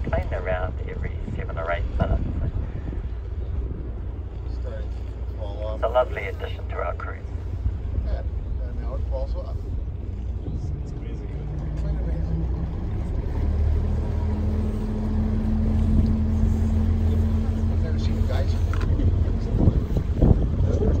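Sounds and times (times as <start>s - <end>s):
boat engine humming: 0.0s - 21.0s.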